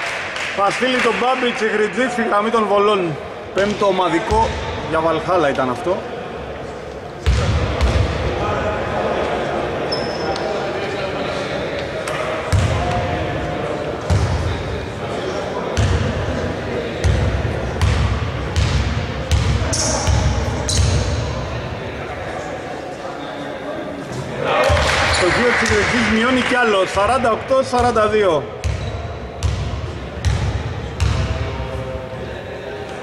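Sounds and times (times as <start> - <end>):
basketball bouncing on court: 12.5 - 13.0, 17.0 - 21.2, 27.8 - 31.4.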